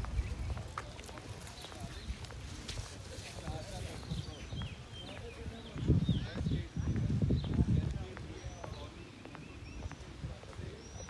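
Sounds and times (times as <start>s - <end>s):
footsteps on asphalt: 0.0s - 11.0s.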